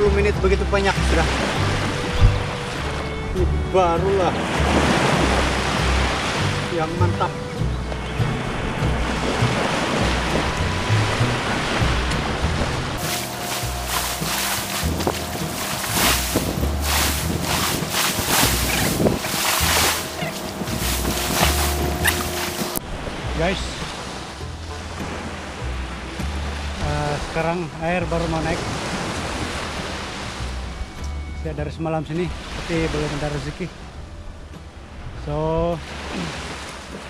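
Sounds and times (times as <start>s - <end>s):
small waves washing onto beach: 0.7s - 3.2s, 3.8s - 30.6s, 35.1s - 37.0s
wind buffeting microphone: 1.0s - 3.4s, 7.4s - 26.3s.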